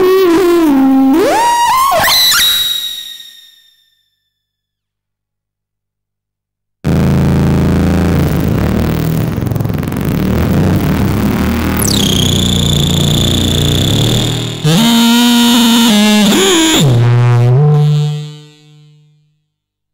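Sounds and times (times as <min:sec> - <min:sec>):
synthesizer low drone with noise: 0:06.9 - 0:18.4
synthesizer pitched note bending: 0:06.9 - 0:19.2
high whistling tone sweeping down: 0:11.8 - 0:14.8.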